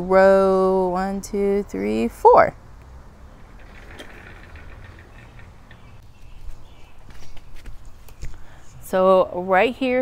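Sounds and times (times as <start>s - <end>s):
low outdoor rumble: 0.0s - 6.7s.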